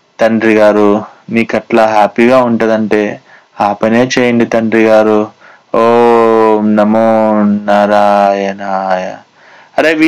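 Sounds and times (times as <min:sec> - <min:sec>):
man chanting: 0:00.2 - 0:10.0.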